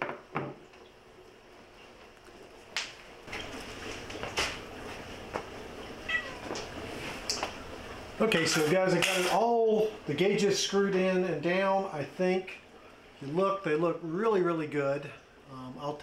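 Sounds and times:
cat meowing: 6.0 - 6.6.

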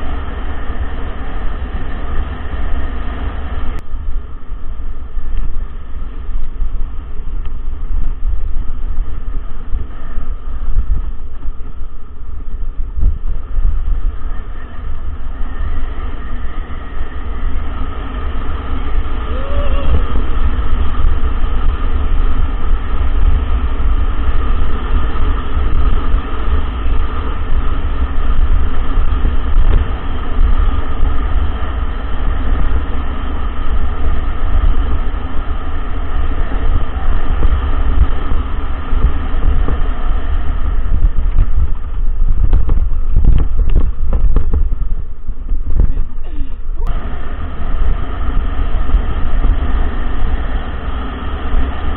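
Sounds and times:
wind buffeting microphone: 0.0 - 51.9
mountain bike rattling on dirt track: 3.5 - 45.9.

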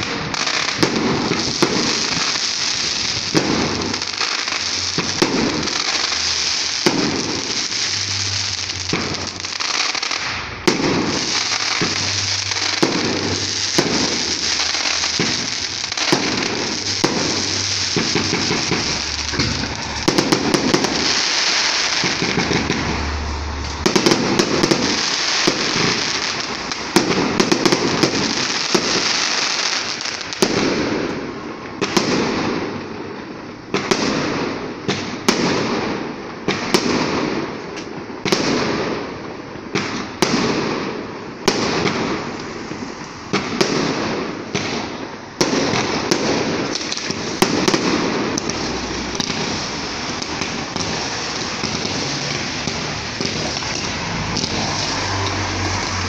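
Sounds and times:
fireworks bangs: 0.0 - 56.0
fireworks crackling: 0.0 - 56.0.

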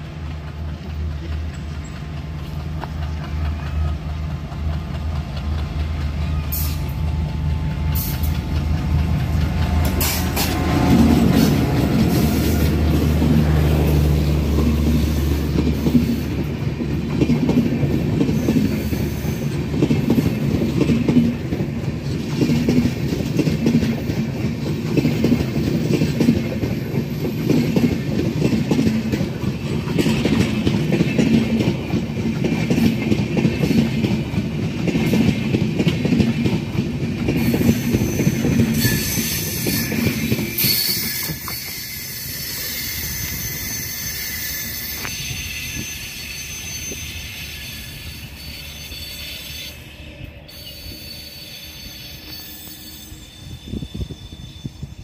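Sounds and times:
wheels clacking over rail joints: 0.0 - 42.8
locomotive engine droning: 0.0 - 53.8
train coaches rumbling past: 0.0 - 55.0.

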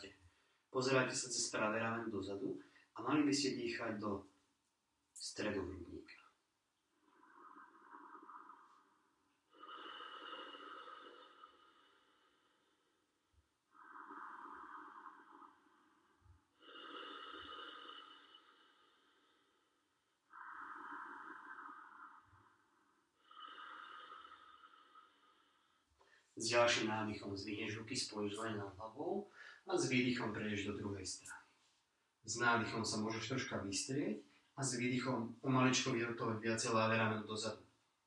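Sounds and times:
person breathing slowly: 7.0 - 13.0, 13.7 - 26.4, 29.3 - 29.7.

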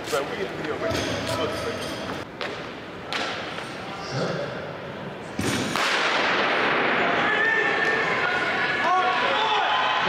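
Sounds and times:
crowd cheering: 6.9 - 10.0.

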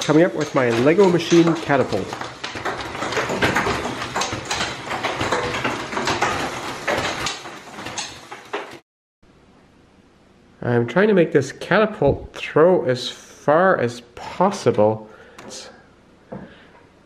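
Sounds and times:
plastic gears clattering and snapping: 0.0 - 8.8.

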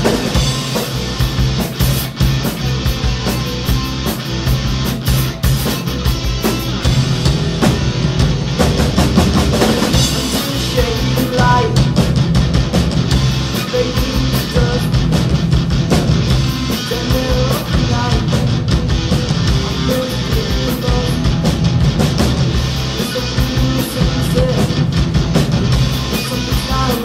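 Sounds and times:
bass guitar: 0.0 - 27.0
drum kit: 0.0 - 27.0
electric guitars: 0.0 - 27.0.

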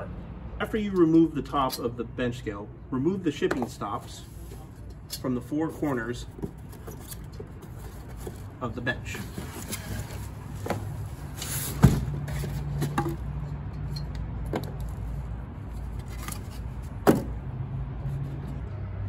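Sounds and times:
knocks and bumps in box: 11.7 - 13.2, 17.0 - 17.4.

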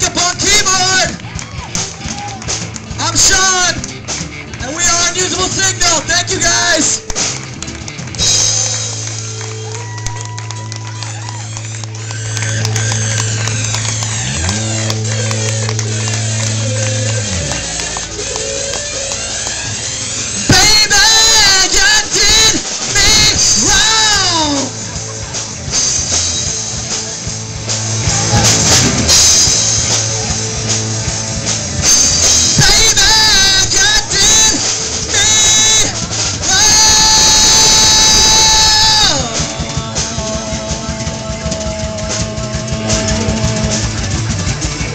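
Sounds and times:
blues harmonica: 0.0 - 44.9
drums: 0.0 - 44.9
high lead guitar line bending pitch: 0.0 - 44.9
live rock band playing: 0.0 - 44.9
held bass note: 8.3 - 21.0, 23.3 - 33.0, 33.6 - 44.9.

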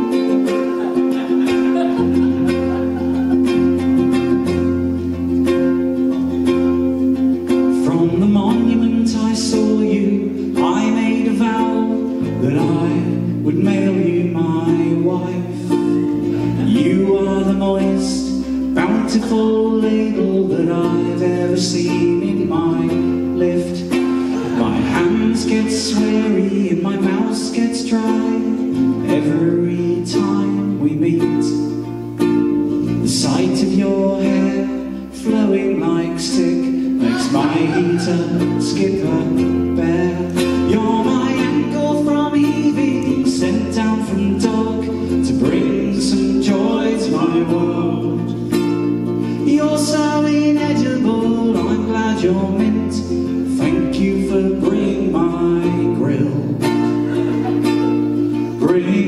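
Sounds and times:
man singing: 0.0 - 59.0
ukulele strumming: 0.0 - 59.0.

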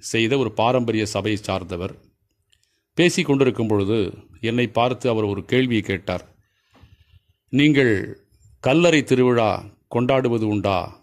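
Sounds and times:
man speaking: 0.0 - 2.1, 3.0 - 6.4, 7.5 - 11.0.

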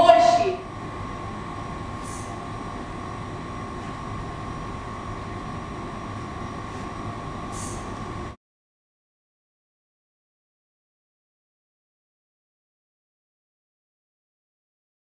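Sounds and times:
high-pitched hum: 0.0 - 8.4
low room rumble: 0.0 - 8.4
faint brief hisses: 2.0 - 2.4, 7.5 - 8.0.

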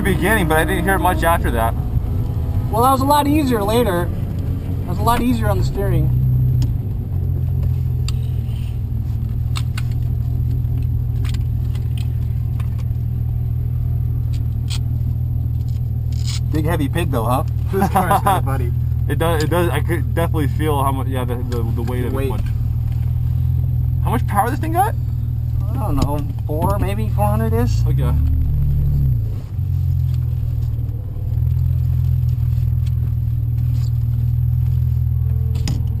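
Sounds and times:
car engine droning in cabin: 0.0 - 36.0.

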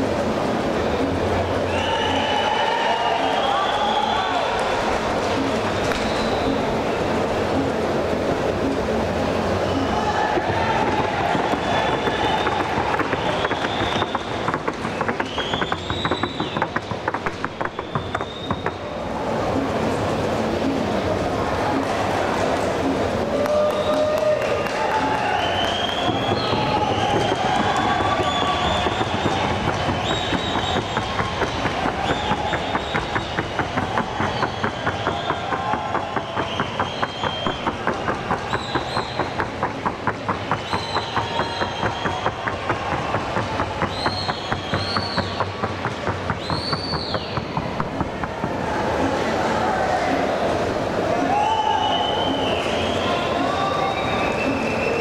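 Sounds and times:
crowd whistles and calls: 0.0 - 55.0
horse hooves trotting: 25.9 - 49.1.

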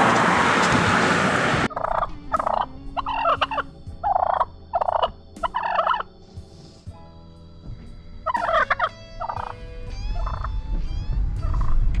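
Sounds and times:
turkey gobbling: 1.7 - 6.1, 8.3 - 9.6, 10.2 - 10.5, 11.4 - 11.8
low rumble: 9.8 - 12.0.

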